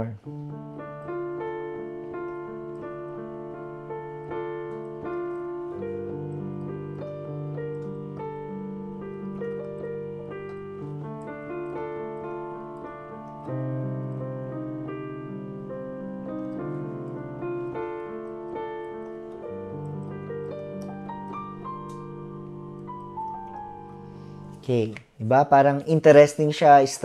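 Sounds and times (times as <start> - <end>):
electronic keyboard piano chords: 0.0 - 27.0.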